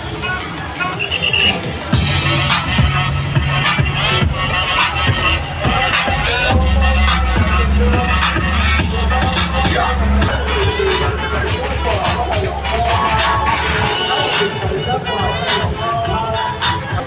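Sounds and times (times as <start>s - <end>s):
electronic dance music: 0.2s - 17.0s
heavy bass line: 1.9s - 17.0s.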